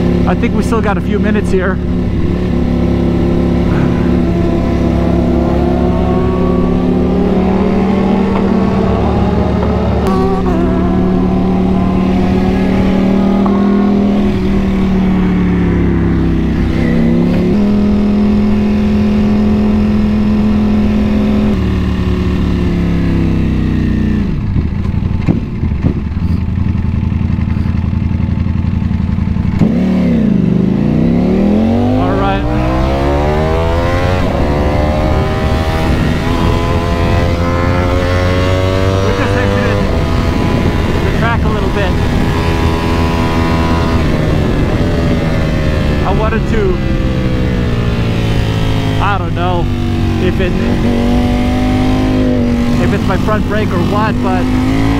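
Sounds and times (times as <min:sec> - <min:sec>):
motorcycle engine revving: 0:00.0 - 0:54.9.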